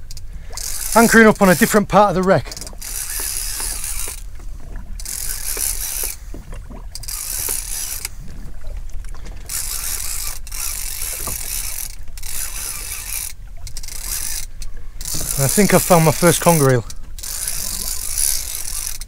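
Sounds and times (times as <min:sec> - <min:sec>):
fishing reel gear rasp: 0:00.0 - 0:04.3, 0:05.0 - 0:06.2, 0:07.0 - 0:08.1, 0:09.5 - 0:19.0.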